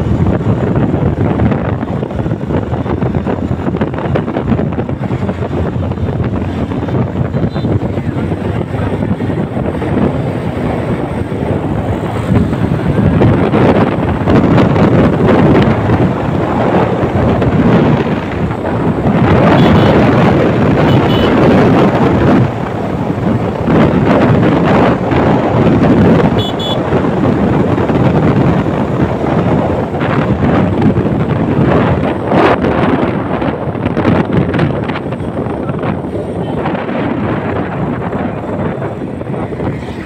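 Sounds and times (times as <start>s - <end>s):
motorcycle road and engine noise: 0.0s - 40.0s
wind buffeting microphone: 0.0s - 40.0s.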